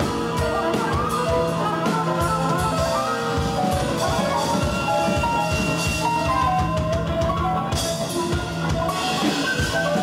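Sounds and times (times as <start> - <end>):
bass guitar: 0.0 - 10.0
drum and cymbal hits: 0.0 - 10.0
electric guitar: 0.0 - 10.0.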